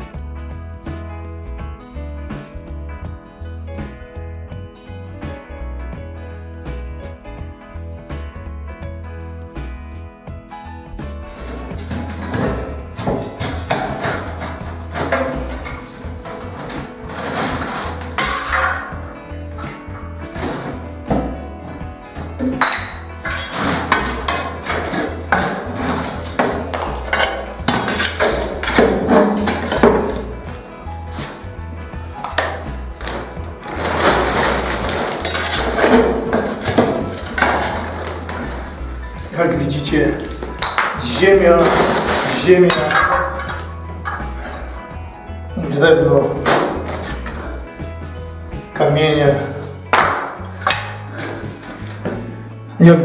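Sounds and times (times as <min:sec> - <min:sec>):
background music: 0:00.0 - 0:53.0.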